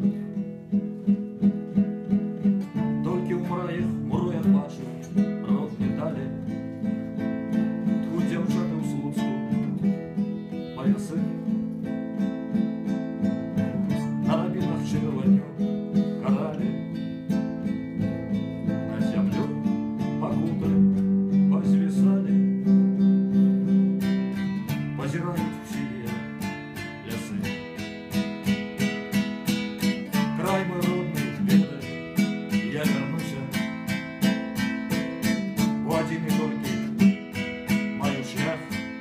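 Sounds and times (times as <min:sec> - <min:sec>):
acoustic guitar strumming chords: 0:00.0 - 0:39.0.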